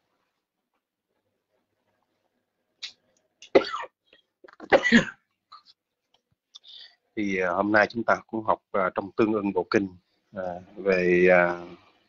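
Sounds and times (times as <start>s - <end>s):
person coughing: 3.5s - 4.0s, 4.6s - 5.7s.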